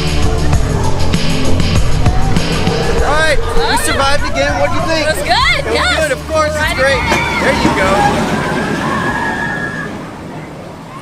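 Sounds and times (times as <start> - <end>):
roller coaster rumble: 0.0 - 11.0
riders shrieking: 2.0 - 11.0.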